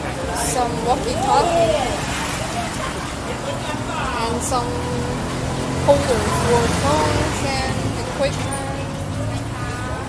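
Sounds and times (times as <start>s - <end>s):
people talking: 0.0s - 5.1s, 5.7s - 10.0s
road traffic rumble: 0.0s - 10.0s.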